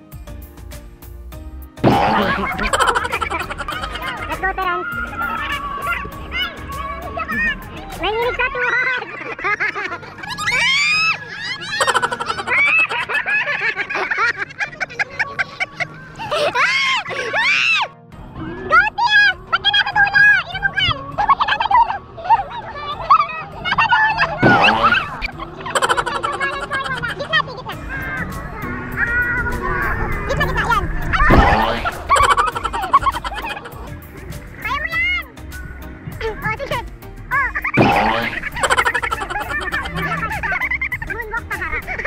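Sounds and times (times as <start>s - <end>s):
people shrieking and laughing: 1.8s - 42.0s.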